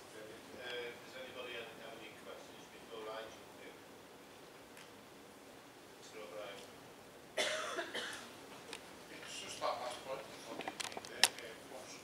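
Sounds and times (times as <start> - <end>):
short cough: 7.4 - 8.3.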